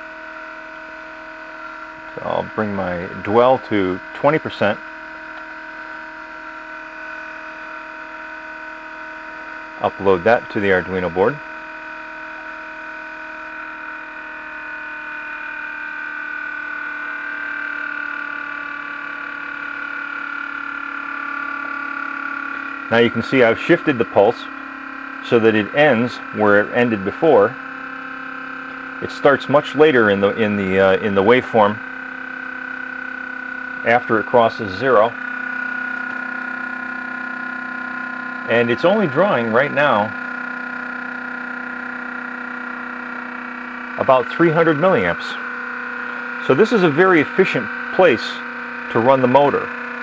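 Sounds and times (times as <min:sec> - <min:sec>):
electrical hum with whining tones: 0:00.0 - 0:50.0.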